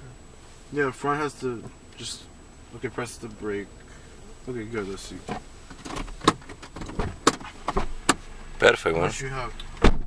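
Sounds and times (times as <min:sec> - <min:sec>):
clicks and knocks in car cabin: 0:05.2 - 0:08.2, 0:09.6 - 0:10.0.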